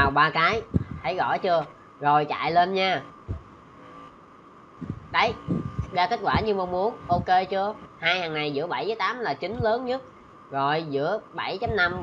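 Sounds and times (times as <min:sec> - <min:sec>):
faint steady hum: 0:00.0 - 0:12.0
soft low thump: 0:00.6 - 0:01.1, 0:04.8 - 0:06.5, 0:11.6 - 0:12.0.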